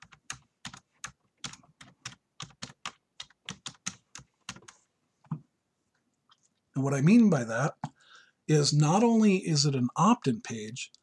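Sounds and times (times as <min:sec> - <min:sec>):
typing on computer keyboard: 0:00.0 - 0:04.8.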